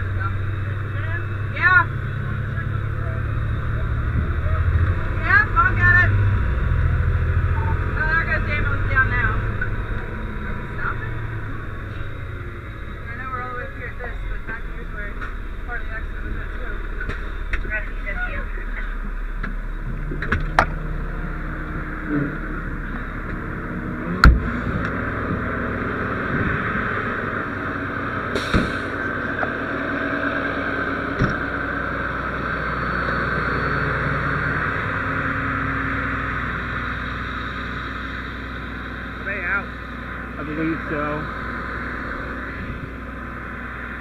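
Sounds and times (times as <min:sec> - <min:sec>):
indistinct voices: 0:00.0 - 0:44.0
road traffic: 0:00.0 - 0:44.0
truck engine: 0:00.0 - 0:44.0
sharp knocks and clunks: 0:24.2 - 0:25.4.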